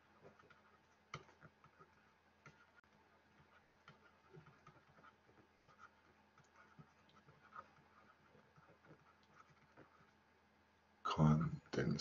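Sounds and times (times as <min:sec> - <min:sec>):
stylus writing on tablet screen: 0:00.0 - 0:10.3.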